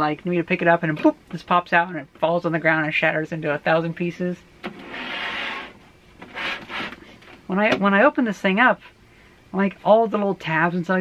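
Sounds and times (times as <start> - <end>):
plastic case scraping across desk: 4.6 - 7.0.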